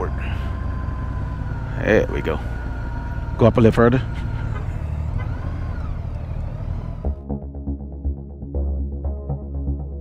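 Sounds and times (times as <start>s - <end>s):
motorcycle engine running: 0.0s - 7.2s.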